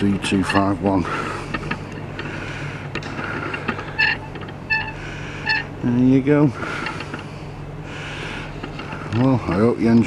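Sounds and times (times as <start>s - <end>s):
high-pitched squeals: 3.9s - 5.7s.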